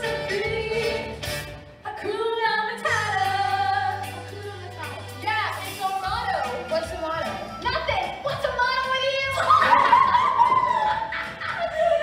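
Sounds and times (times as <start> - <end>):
backing music: 0.0 - 12.0.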